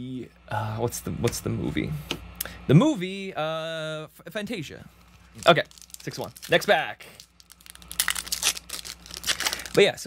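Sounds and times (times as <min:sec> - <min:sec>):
foil wrapper being torn open: 0:05.3 - 0:10.0.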